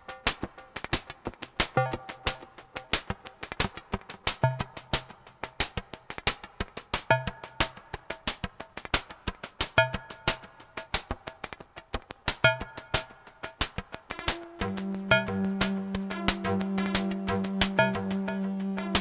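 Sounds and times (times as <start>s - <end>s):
clicky electronic percussive ticks: 0.1s - 19.0s.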